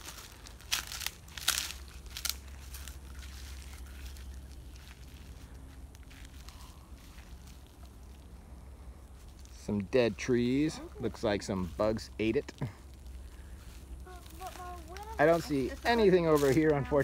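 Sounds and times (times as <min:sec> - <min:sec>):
footsteps crunching on pine needles: 0:00.0 - 0:17.0.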